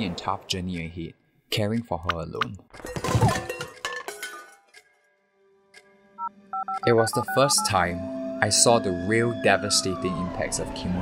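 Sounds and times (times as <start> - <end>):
telephone keypad beeps: 6.2 - 7.8.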